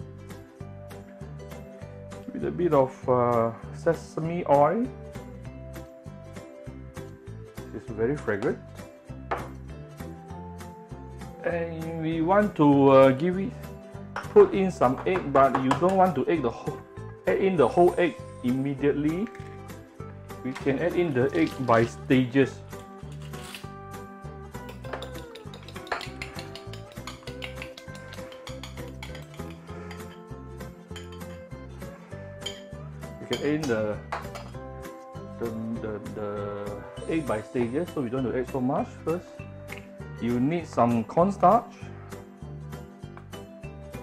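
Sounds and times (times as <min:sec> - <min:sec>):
background music: 0:00.0 - 0:44.0
bottle set down on countertop: 0:09.3 - 0:09.6
fork clinking against ceramic bowl: 0:24.6 - 0:30.3, 0:30.9 - 0:31.4, 0:32.4 - 0:33.5.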